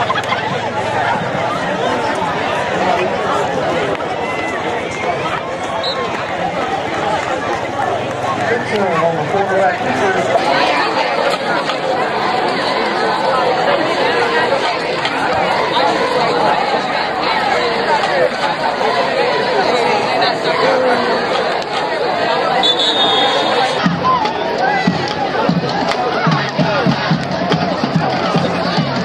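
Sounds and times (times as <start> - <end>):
crowd babble: 0.0 - 29.0.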